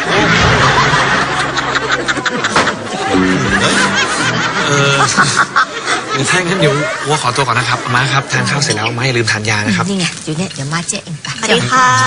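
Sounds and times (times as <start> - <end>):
group laughter: 0.0 - 8.1.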